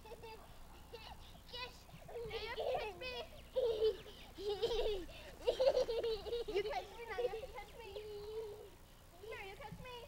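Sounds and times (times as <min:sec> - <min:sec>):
small child laughing: 0:00.0 - 0:01.2, 0:02.2 - 0:08.6.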